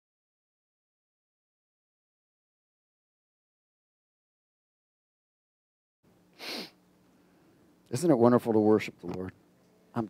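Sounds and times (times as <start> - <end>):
man sniffing into microphone: 6.4 - 6.8.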